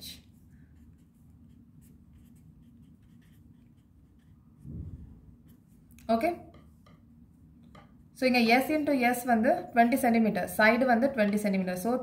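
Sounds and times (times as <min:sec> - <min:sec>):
low steady hum: 0:00.0 - 0:12.0
pen scratching on paper: 0:00.8 - 0:04.6.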